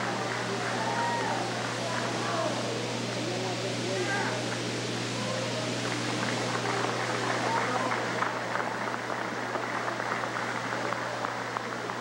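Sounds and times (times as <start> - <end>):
crowd clapping: 0.0 - 2.8, 5.6 - 12.0
murmur of voices: 0.0 - 12.0.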